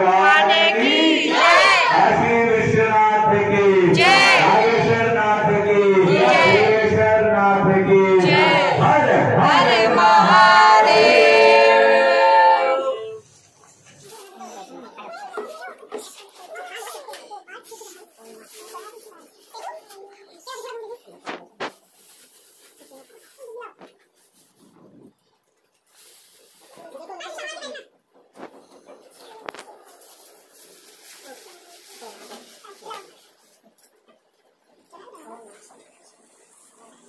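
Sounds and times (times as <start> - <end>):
murmur of voices: 0.0 - 25.2, 26.5 - 37.0.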